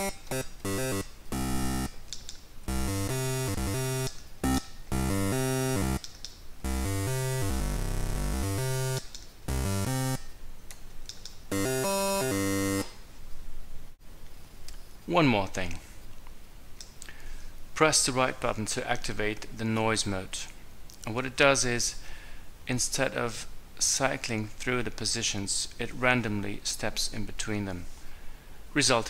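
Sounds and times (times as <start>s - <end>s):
buzzy synthesizer notes: 0.0s - 2.0s, 2.7s - 6.0s, 6.6s - 10.3s, 11.5s - 13.0s.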